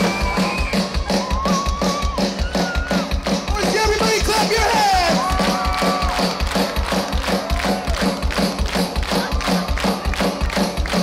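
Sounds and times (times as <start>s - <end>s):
kick-drum beat: 0.0s - 11.0s
pop-rock band music: 0.0s - 11.0s.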